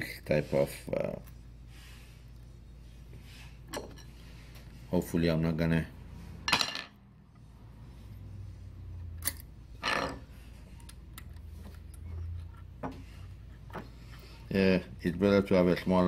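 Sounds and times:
metallic clicks of small parts: 9.2s - 10.0s.

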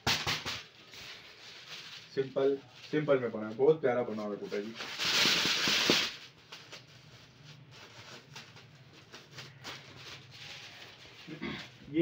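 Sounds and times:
man talking: 2.1s - 4.8s.

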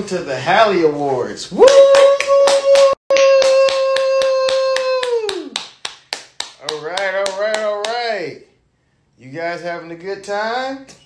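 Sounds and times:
person cheering woo: 1.6s - 5.7s
hands clapping in rhythm: 1.6s - 8.1s.

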